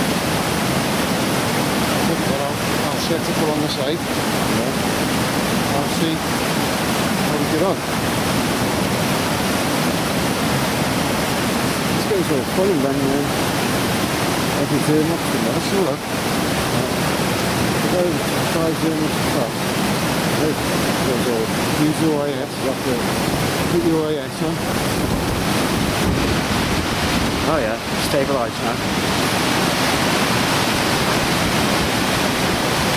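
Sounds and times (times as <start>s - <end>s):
waterfall rushing and splashing: 0.0s - 32.9s.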